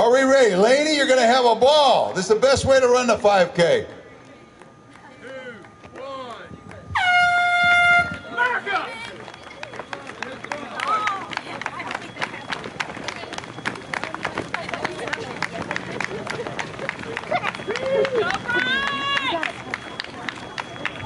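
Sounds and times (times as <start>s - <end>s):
runners' footsteps on pavement: 0.0s - 21.0s
voices calling out: 4.2s - 21.0s
starting horn blast: 6.9s - 8.3s.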